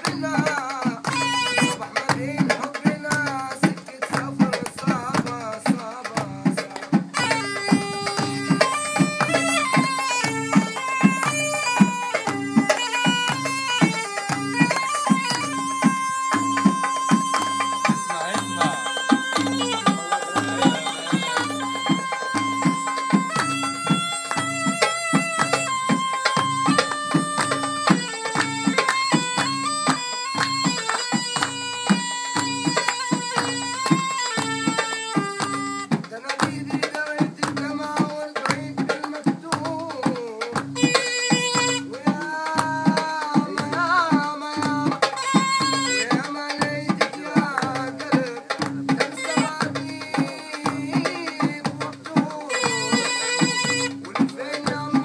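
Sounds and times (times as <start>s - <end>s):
drum beat: 0.0s - 55.0s
reed wind instrument with drone: 1.1s - 2.0s, 7.2s - 35.9s, 40.8s - 42.2s, 45.0s - 46.3s, 52.5s - 55.0s.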